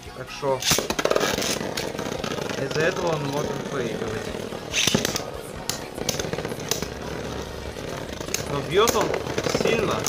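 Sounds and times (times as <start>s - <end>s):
spinning tops whirring: 0.6s - 10.0s.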